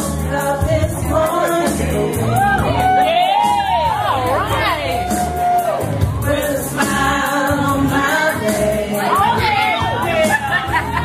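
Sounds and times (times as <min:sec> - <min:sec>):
women singing into microphone: 0:00.0 - 0:05.4, 0:06.2 - 0:11.0
loud backing music: 0:00.0 - 0:11.0.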